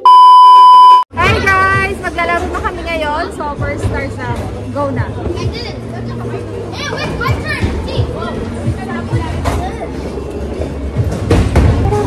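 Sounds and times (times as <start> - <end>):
high-pitched test-tone beep: 0.0 - 1.0.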